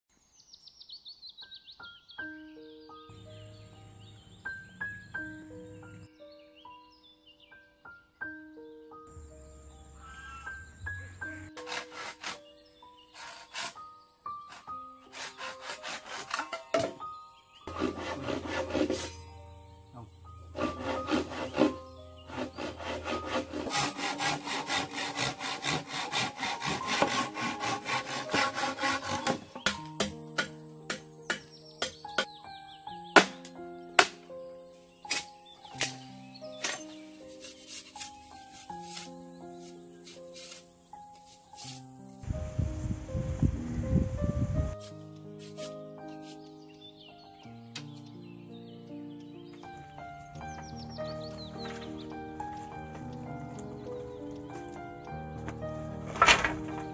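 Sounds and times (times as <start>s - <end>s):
background music: 1.6s - 56.9s
hand saw cutting bamboo: 11.6s - 17.0s, 17.7s - 19.2s, 20.5s - 32.3s, 33.2s - 33.4s, 35.1s - 41.9s
knife striking bamboo: 23.6s - 32.3s, 33.2s - 34.2s, 35.1s - 36.0s, 36.6s - 41.9s.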